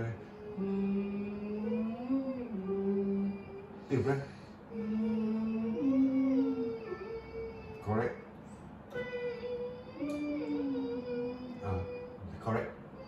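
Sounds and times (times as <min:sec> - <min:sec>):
child singing held notes: 0:00.0 - 0:13.0.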